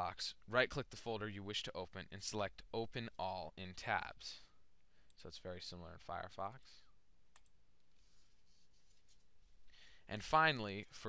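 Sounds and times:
computer mouse click: 7.3s - 7.6s.

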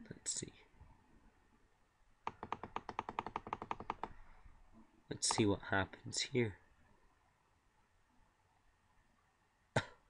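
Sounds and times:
computer mouse clicking rapidly: 2.2s - 4.2s, 5.2s - 5.6s.

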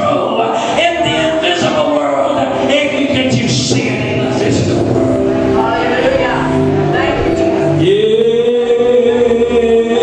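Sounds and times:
band accompaniment: 0.0s - 10.0s.

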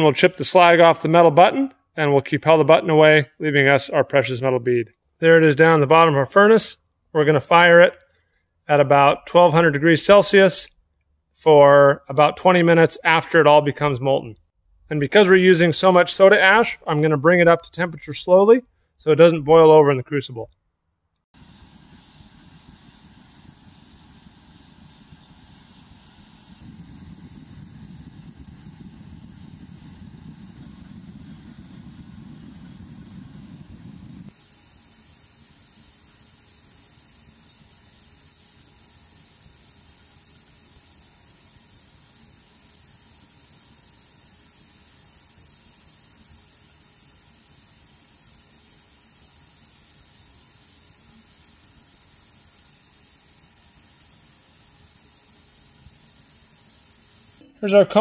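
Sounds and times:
furnace burner low rumble: 21.4s - 36.6s
burner high hiss: 21.4s - 58.0s.

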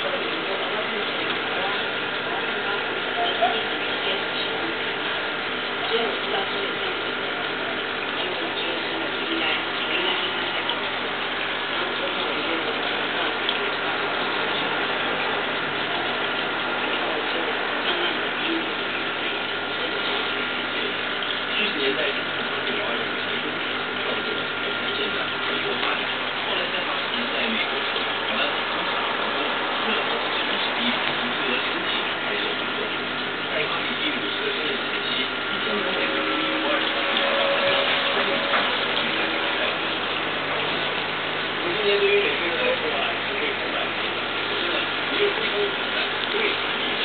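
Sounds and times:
aquarium pump hum: 0.0s - 47.0s
water and bubbles hissing: 0.0s - 47.0s.

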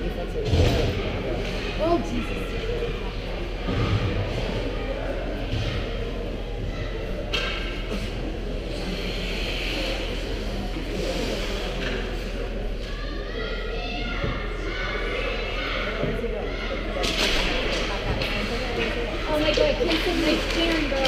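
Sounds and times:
murmur of spectators: 0.0s - 21.0s
hockey sticks on ice: 17.0s - 21.0s.

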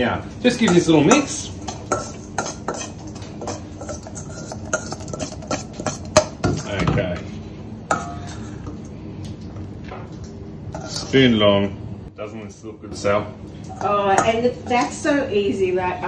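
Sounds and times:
metal spoon scraping a steel bowl: 0.7s - 6.7s, 10.7s - 11.2s.

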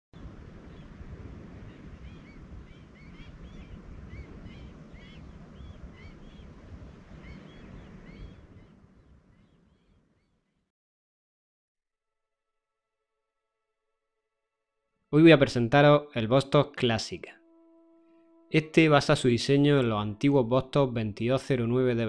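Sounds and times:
wind rumble on microphone: 0.2s - 10.0s
birds chirping: 1.6s - 10.5s.

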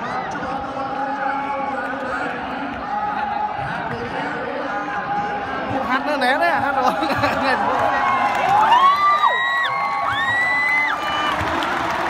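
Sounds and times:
stadium crowd cheering: 6.7s - 12.0s.

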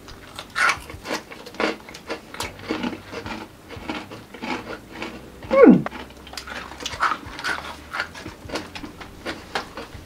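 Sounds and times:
pretzels being chewed: 0.0s - 10.0s.

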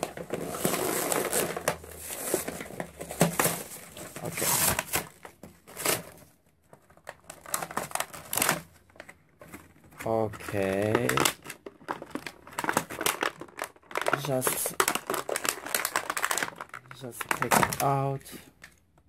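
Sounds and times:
packaging crinkling and tearing: 0.0s - 18.8s.

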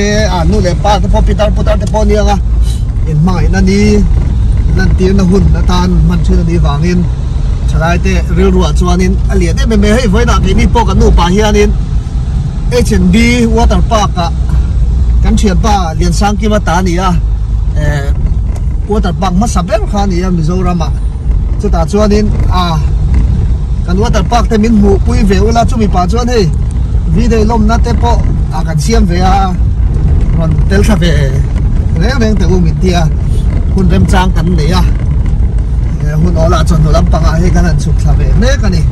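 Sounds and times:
man talking: 0.0s - 11.8s, 12.7s - 14.6s, 15.2s - 23.0s, 23.8s - 29.7s, 30.3s - 35.0s, 35.9s - 38.9s
car engine and road rumble: 0.0s - 38.9s.

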